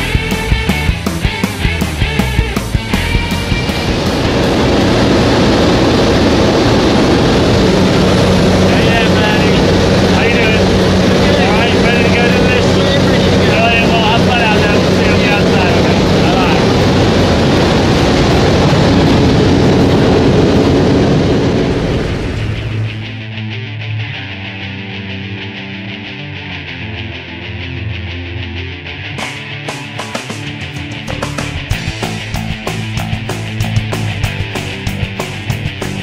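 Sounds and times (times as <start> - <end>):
plane engine and propeller drone: 0.0 - 23.6, 31.0 - 36.0
rushing air: 0.2 - 23.3
raised voices: 7.4 - 17.3.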